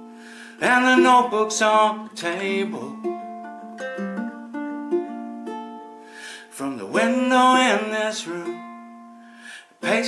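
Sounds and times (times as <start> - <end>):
ukulele chords ringing: 0.0 - 10.0.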